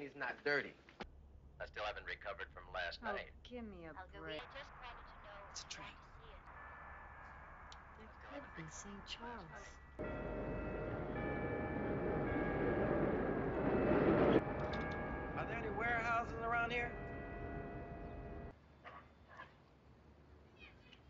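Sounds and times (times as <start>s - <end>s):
steady held tones: 6.1s - 18.5s
train rushing along viaduct: 10.0s - 18.5s.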